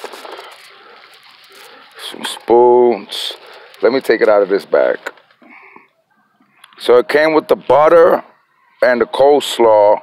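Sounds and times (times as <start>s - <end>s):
plastic bag rustling: 0.0s - 5.6s.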